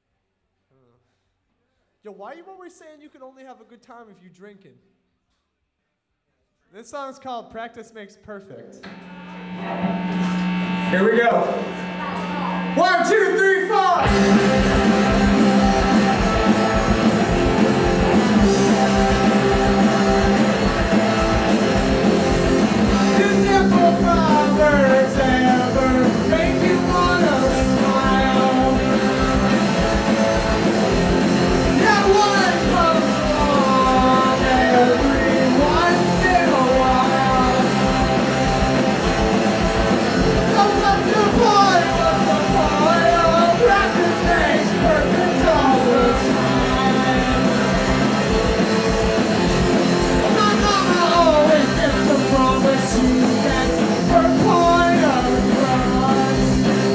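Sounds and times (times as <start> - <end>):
electric guitars: 8.8 - 56.9
drums: 9.0 - 56.9
man singing: 22.8 - 29.6, 31.6 - 38.5, 40.3 - 48.2, 50.2 - 56.9
person counting in: 40.5 - 47.1.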